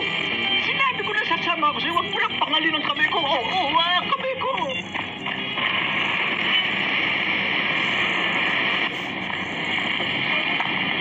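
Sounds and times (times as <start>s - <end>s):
film soundtrack hiss on television: 0.0s - 11.0s.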